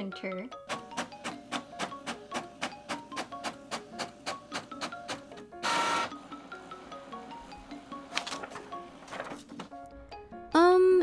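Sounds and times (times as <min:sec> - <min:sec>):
background music of quick notes: 0:00.0 - 0:11.0
inkjet printer feeding paper: 0:00.8 - 0:06.9, 0:08.1 - 0:09.7.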